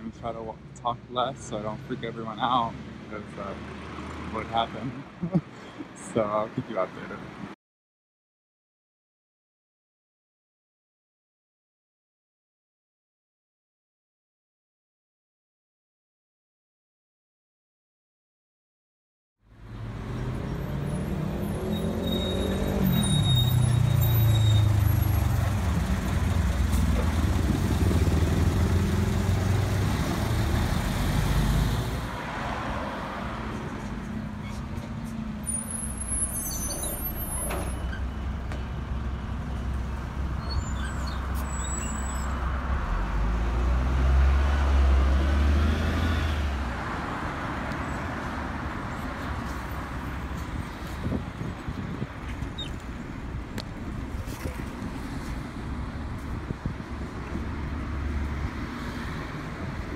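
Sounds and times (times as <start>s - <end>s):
passing traffic: 0.0s - 7.6s, 19.4s - 59.9s
heavy vehicle passing: 23.6s - 34.6s.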